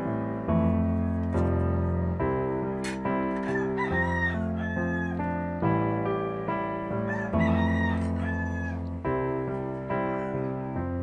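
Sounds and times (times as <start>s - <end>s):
soft piano music: 0.0s - 11.0s
rooster crowing: 3.4s - 5.3s, 7.0s - 8.9s.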